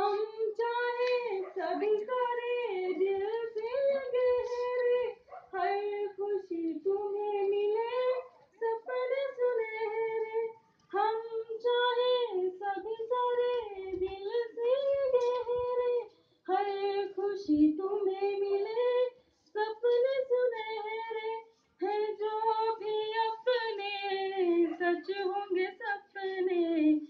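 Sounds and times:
woman singing unaccompanied: 0.0s - 27.0s.

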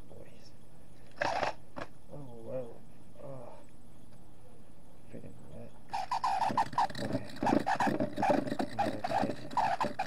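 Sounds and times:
short noisy rasp: 1.2s - 1.6s, 5.9s - 10.0s.

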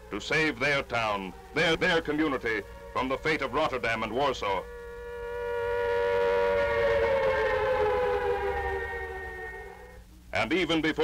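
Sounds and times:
air raid siren wailing: 0.0s - 10.2s.

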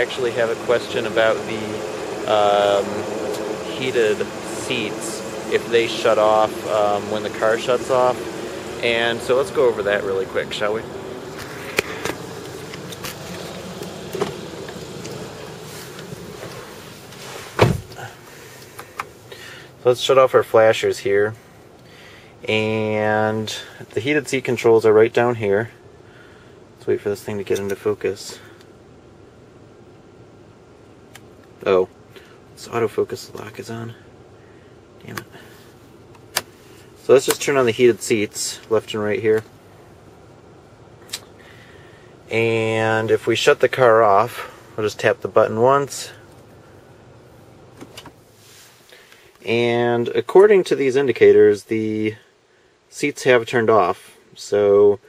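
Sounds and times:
low steady background noise: 0.0s - 55.0s
steady background noise: 0.0s - 55.0s
car door shutting: 11.4s - 19.1s, 47.7s - 48.2s.

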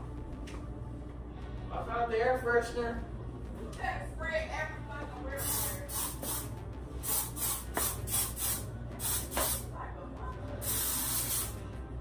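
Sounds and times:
aerosol spray can hissing: 5.4s - 9.7s, 10.6s - 11.6s.

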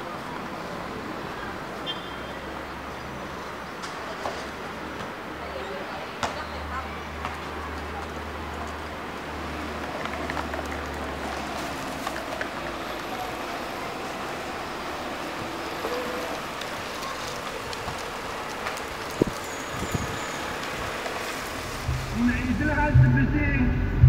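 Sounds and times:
car driving past: 19.5s - 24.0s.

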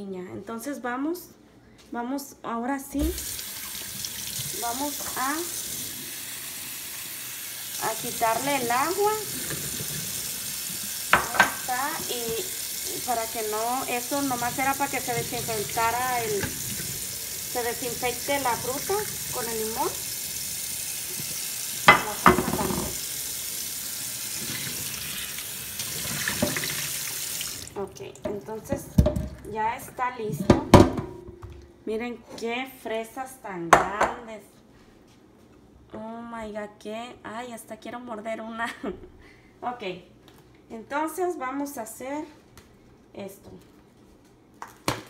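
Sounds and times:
faucet running into steel sink: 3.0s - 27.8s.

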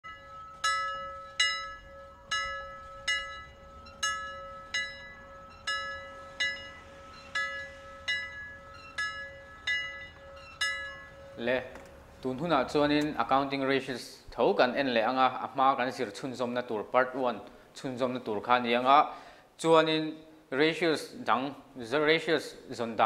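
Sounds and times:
bell-like chime notes: 0.0s - 12.1s
steady held tone: 0.0s - 13.6s.

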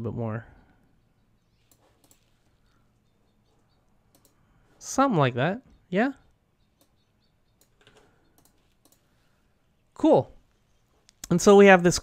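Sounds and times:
faint computer clicks: 1.5s - 4.4s, 6.7s - 9.3s.

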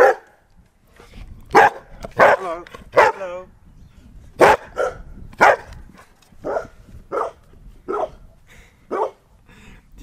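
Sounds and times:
dog barking: 0.0s - 0.3s, 1.5s - 3.2s, 4.4s - 5.7s, 6.4s - 8.2s, 8.9s - 9.2s.

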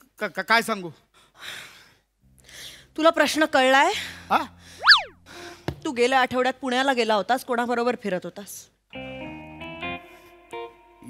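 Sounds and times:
comic whistle-like glide: 4.8s - 5.2s.

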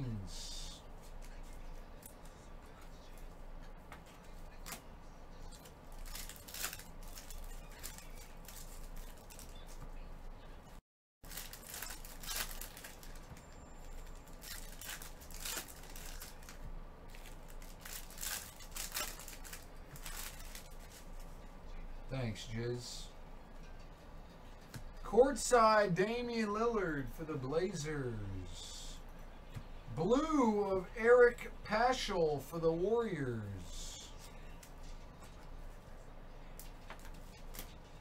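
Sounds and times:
foil wrappers crinkling and tearing: 5.5s - 9.8s, 11.2s - 21.3s.

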